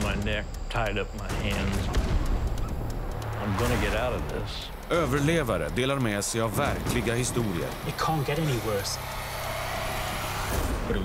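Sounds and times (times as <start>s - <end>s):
rumbling drone with held tone: 0.0s - 11.0s.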